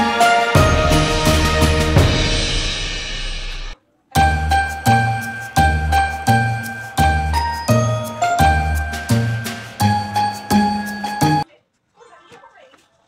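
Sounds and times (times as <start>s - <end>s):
bell-like tune over bass line: 0.0s - 3.2s, 4.2s - 11.4s.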